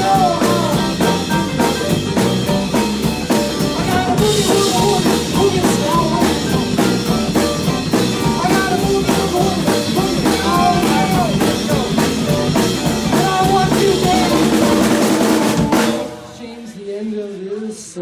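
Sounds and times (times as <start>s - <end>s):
bass guitar: 0.0s - 16.4s
drum kit: 0.0s - 16.4s
electric guitar with bent notes: 0.0s - 16.4s.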